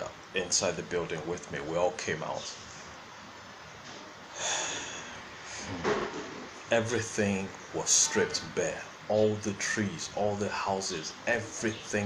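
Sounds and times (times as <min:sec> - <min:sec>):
faint room hiss: 0:00.0 - 0:12.0
man breathing in through nose: 0:04.3 - 0:05.7.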